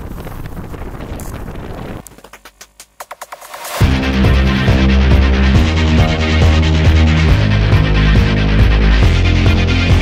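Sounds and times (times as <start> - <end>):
wind buffeting microphone: 0.0 - 2.2.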